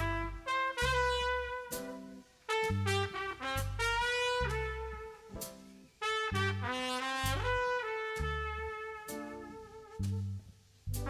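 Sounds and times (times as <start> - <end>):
low bass line: 0.0 - 2.0, 2.6 - 5.6, 6.3 - 11.0
trumpet playing slow melody: 0.0 - 11.0.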